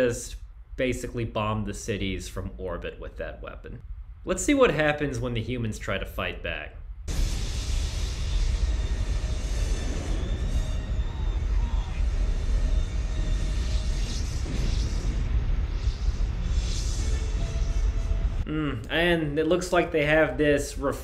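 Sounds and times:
low rumble of air battle: 0:06.7 - 0:19.4
missiles bursting: 0:07.0 - 0:18.5.

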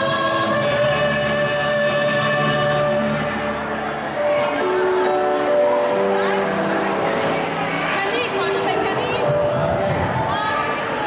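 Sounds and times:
choir singing long notes: 0:00.0 - 0:07.8.

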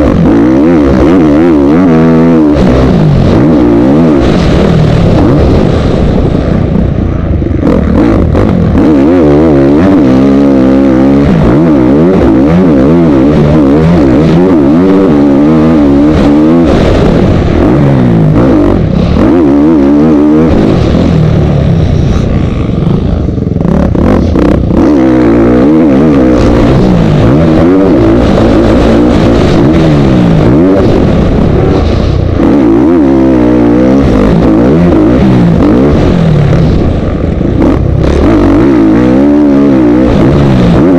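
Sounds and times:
motocross bike engine revving: 0:00.0 - 0:40.9.

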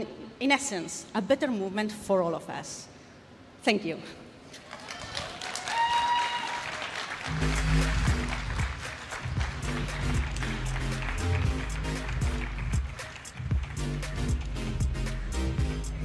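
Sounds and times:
audience applauding: 0:04.6 - 0:14.5
rising whoop: 0:04.8 - 0:06.8
background music with low beat: 0:07.3 - 0:16.0.

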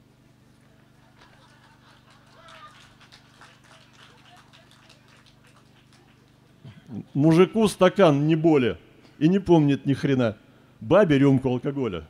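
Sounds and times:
low electrical hum: 0:00.0 - 0:12.0
soft audience laughter: 0:00.6 - 0:04.6
audience murmur: 0:00.6 - 0:07.1.

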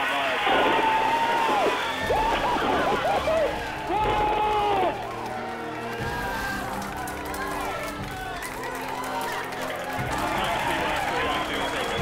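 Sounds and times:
background music: 0:00.0 - 0:12.0
group of people cheering: 0:00.0 - 0:12.0.

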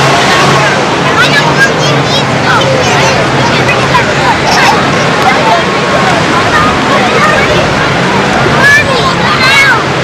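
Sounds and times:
surf: 0:00.0 - 0:10.0.

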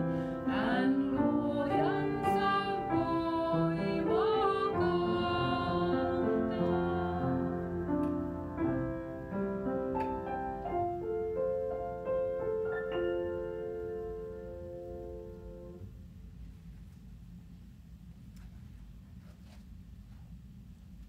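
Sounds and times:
slow calm piano music: 0:00.0 - 0:15.9.

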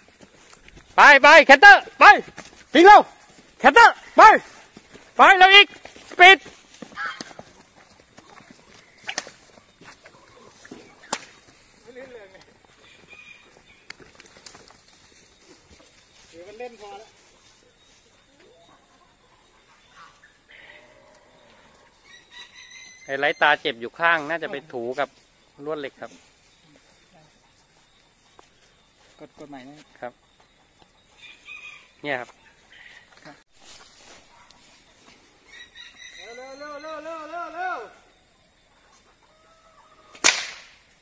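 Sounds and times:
horse whip crack: 0:09.0 - 0:09.5, 0:40.1 - 0:40.9.

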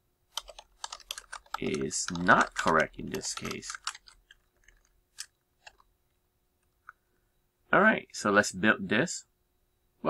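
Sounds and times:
computer keyboard keystrokes: 0:00.4 - 0:05.8.

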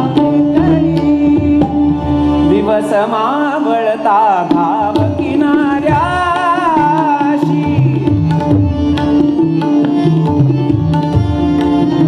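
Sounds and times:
harmonium melody: 0:00.0 - 0:12.0
tabla playing: 0:00.0 - 0:12.0
tanpura drone: 0:00.0 - 0:12.0.

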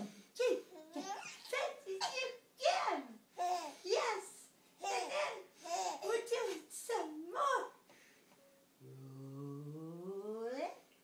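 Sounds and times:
man humming rising note: 0:08.8 - 0:10.4.

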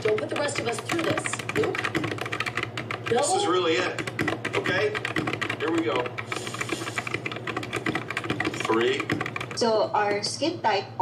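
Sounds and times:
mechanical keyboard typing: 0:00.0 - 0:09.7.

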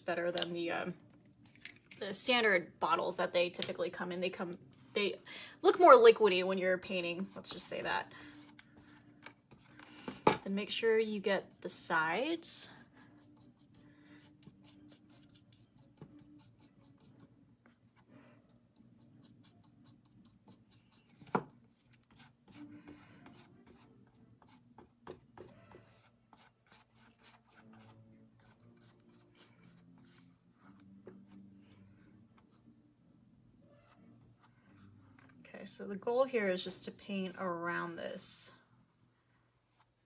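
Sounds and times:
paintbrush scratching on canvas: 0:12.6 - 0:21.3, 0:22.0 - 0:32.7.

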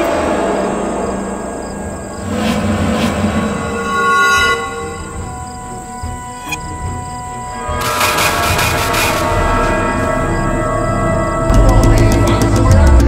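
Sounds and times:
sharp hit: 0:00.0 - 0:06.7, 0:07.8 - 0:10.0
shrill rattling swell: 0:00.0 - 0:11.5
eerie held tones: 0:00.0 - 0:12.0.

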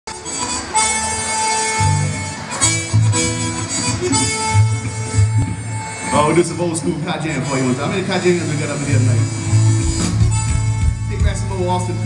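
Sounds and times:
lead instrument holding long notes: 0:00.1 - 0:12.0
live zydeco band playing: 0:00.1 - 0:12.0.

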